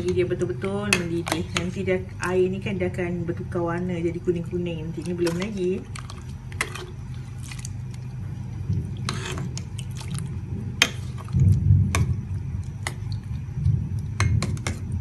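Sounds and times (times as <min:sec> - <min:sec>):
water churning and sloshing: 0:04.5 - 0:15.0.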